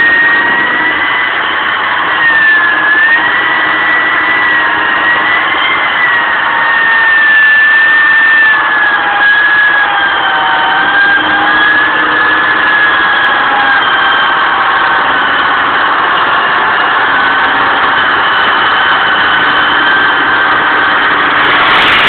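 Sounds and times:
electric winch whining: 0.0s - 22.0s.

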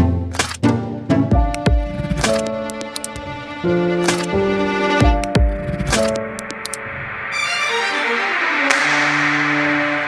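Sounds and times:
whoosh: 5.5s - 10.0s.

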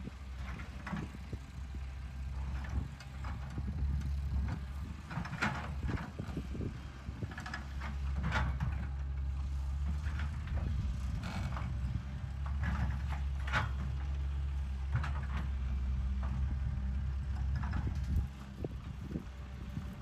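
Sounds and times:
excavator diesel engine running: 0.0s - 20.0s.

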